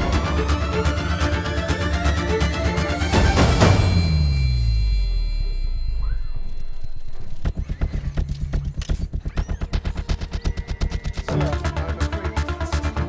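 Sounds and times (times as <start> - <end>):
film score: 0.0 - 13.0
sharp mechanical clicks: 7.4 - 11.7.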